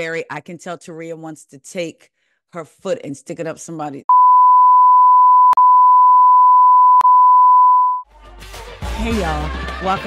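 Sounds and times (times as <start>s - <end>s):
steady electronic beep tone: 4.1s - 8.0s.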